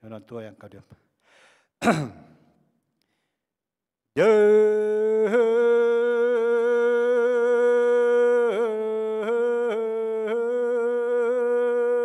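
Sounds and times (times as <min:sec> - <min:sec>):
man chanting into microphone: 0:04.2 - 0:12.0.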